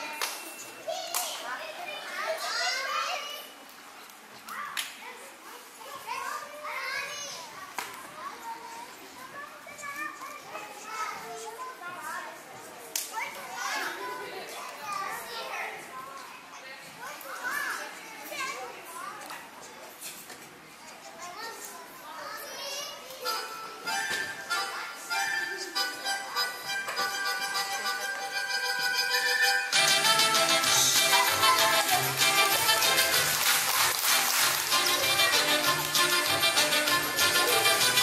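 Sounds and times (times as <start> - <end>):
children chattering and calling out: 0.0 - 38.0
music: 23.3 - 38.0.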